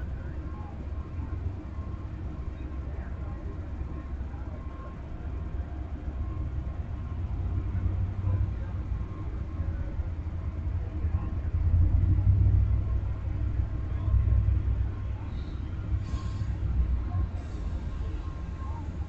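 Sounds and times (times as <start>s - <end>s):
train cars rumbling past: 5.4s - 19.0s.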